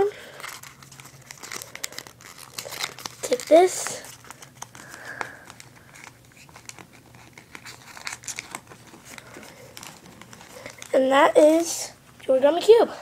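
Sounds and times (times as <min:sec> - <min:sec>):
paper crinkling: 0:00.1 - 0:12.0.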